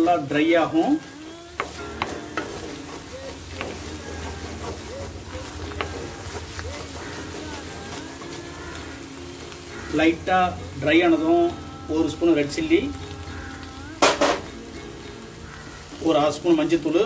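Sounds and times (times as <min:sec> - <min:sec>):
wooden spatula scraping pan: 0:00.0 - 0:12.3
egg sizzling in a pan: 0:00.0 - 0:17.0
spatula knocking on pan: 0:01.2 - 0:10.6, 0:14.0 - 0:14.5.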